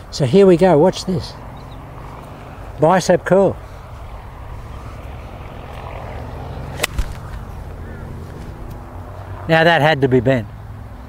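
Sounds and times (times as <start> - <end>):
golf club striking ball: 6.6 - 8.9.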